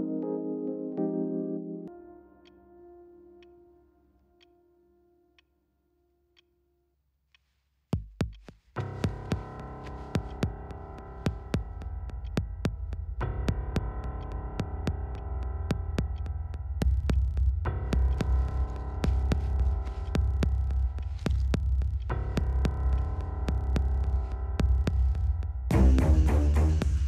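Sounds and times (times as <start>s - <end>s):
low throbbing pulse: 9.1s - 27.0s
steady ticking: 10.2s - 27.0s.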